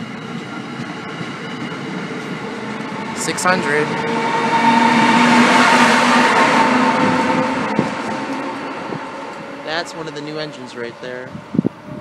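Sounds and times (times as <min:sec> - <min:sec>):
electric locomotive whining: 0:00.0 - 0:12.0
train wheels rushing on rails: 0:00.0 - 0:12.0.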